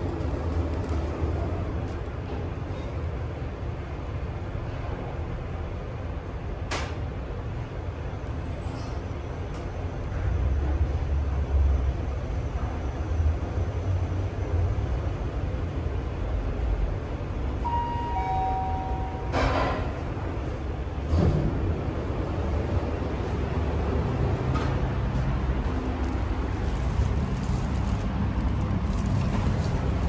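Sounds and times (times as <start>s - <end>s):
elevator car rumbling: 0.0s - 30.0s
two-tone arrival chime: 17.6s - 19.4s.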